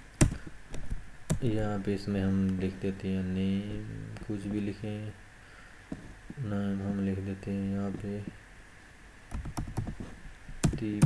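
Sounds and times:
keyboard typing: 9.3s - 10.0s, 10.6s - 11.0s.

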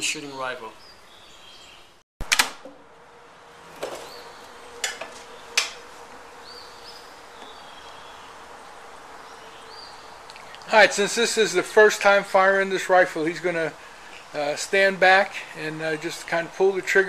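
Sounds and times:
birds chirping: 0.0s - 2.0s, 3.6s - 17.0s.

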